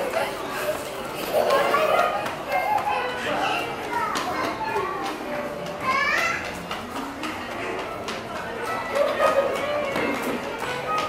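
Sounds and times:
children calling out: 0:00.2 - 0:06.7.

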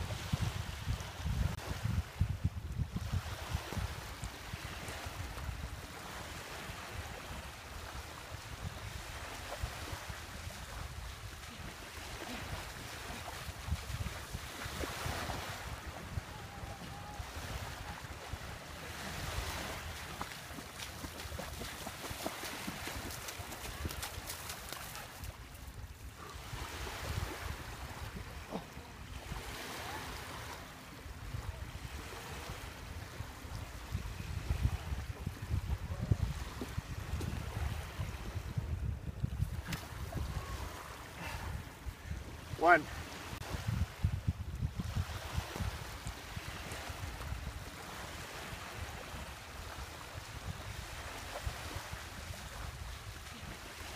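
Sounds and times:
wind buffeting microphone: 0:00.0 - 0:29.5, 0:31.2 - 0:53.9
small waves lapping: 0:02.9 - 0:53.9
running footsteps splashing in water: 0:10.2 - 0:16.0, 0:18.0 - 0:26.1.

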